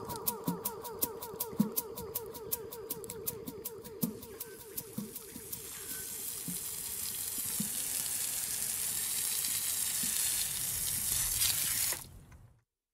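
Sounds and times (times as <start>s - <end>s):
steady hissing noise: 0.0s - 11.4s.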